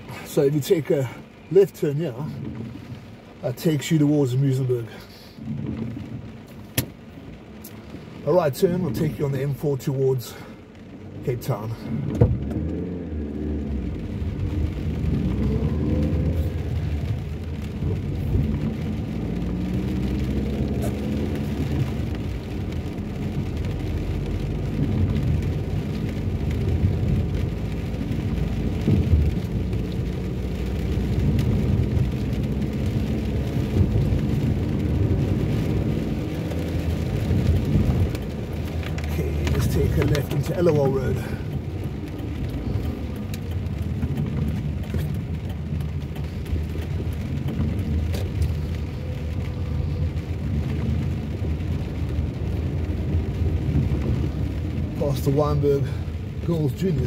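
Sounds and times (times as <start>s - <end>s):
engine and road noise rumble: 0.0s - 57.0s.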